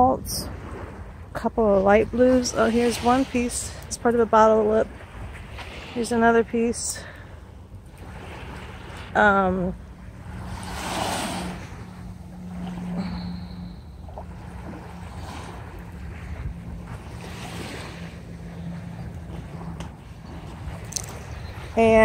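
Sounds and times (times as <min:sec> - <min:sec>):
small waves washing on shore: 0:00.0 - 0:22.0
steady low hum: 0:00.0 - 0:22.0
wind buffeting microphone: 0:00.0 - 0:22.0.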